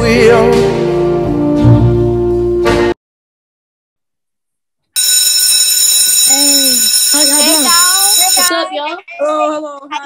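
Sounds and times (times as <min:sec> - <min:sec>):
alarm ringing with high tones: 0:05.0 - 0:08.5
children's voices: 0:06.2 - 0:10.0.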